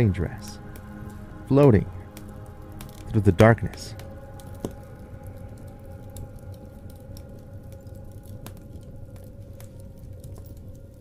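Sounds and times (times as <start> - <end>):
low steady drone: 0.0 - 11.0
wood fire crackling: 0.0 - 11.0.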